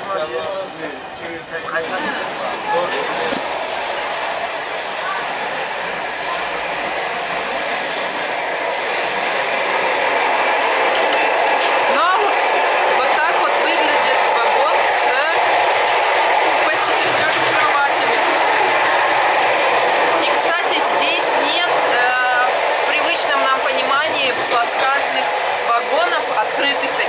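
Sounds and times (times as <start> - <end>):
train wheels rumbling on track: 0.0 - 27.0.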